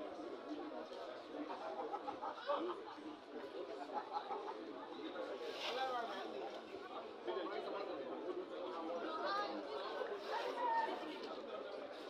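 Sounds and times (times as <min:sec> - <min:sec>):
people chattering and calling out: 0:09.0 - 0:11.7.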